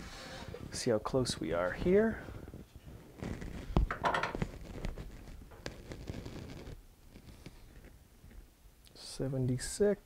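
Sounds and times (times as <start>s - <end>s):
soft rustle: 0.0s - 9.8s.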